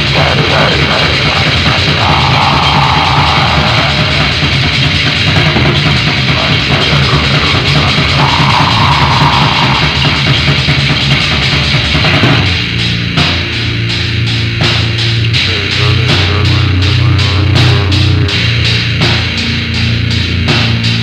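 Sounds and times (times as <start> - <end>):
lo-fi black metal music: 0.0 - 21.0.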